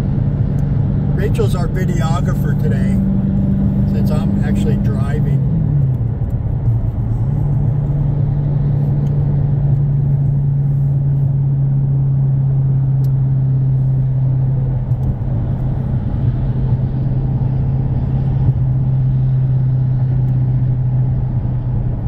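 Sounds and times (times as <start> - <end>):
car engine drone: 0.0 - 22.0
road and tyre rumble: 0.0 - 22.0.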